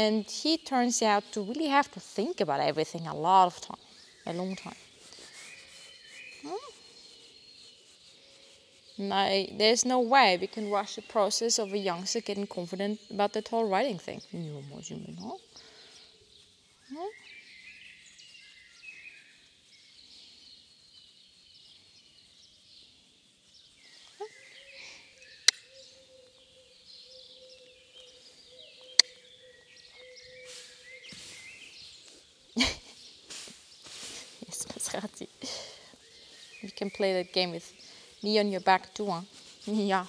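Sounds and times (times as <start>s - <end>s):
small birds chirping: 0.0s - 40.0s
scuffing rustles: 30.3s - 32.0s, 33.2s - 35.0s.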